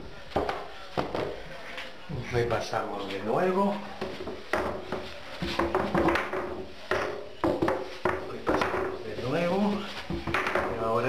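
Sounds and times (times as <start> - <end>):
cloth rubbing on glass: 7.8 - 11.0.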